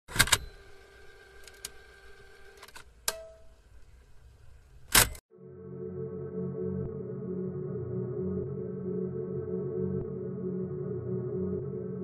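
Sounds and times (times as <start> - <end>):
soft low ambient music pad: 5.3 - 12.0
steady electronic hum: 5.3 - 12.0.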